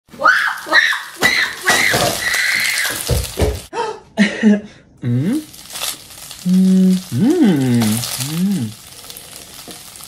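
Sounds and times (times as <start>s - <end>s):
man humming: 5.0s - 5.5s, 6.4s - 8.8s
man imitating sizzling oil: 5.0s - 10.0s.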